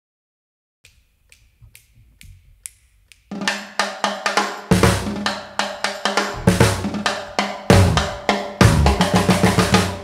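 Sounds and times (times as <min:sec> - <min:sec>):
band playing drums and instruments: 0:03.4 - 0:10.0.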